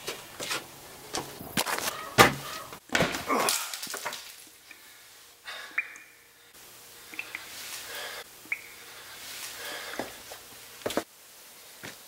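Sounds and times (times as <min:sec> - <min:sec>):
sharp cracks or knocks: 0:01.6 - 0:04.4.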